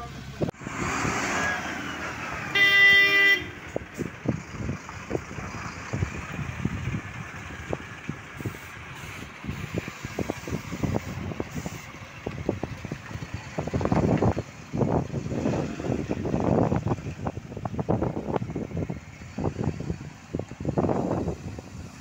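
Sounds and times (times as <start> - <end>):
bus engine running low: 0.0 - 22.0
vehicles passing on wet road: 0.0 - 22.0
vehicle horn: 2.5 - 3.8.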